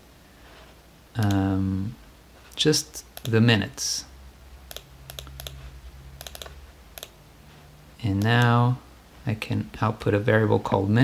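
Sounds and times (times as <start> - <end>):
faint steady low hum: 0.0 - 11.0
typing on computer keyboard: 3.2 - 3.4, 4.7 - 5.6, 6.2 - 7.2.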